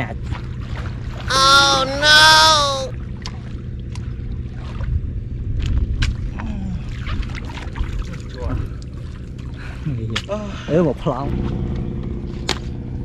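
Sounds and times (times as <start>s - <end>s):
water splashing from wading: 6.9s - 8.4s.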